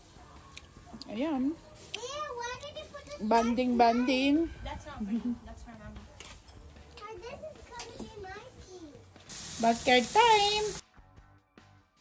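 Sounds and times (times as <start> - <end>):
faint child and adults talking: 0.8 - 9.2.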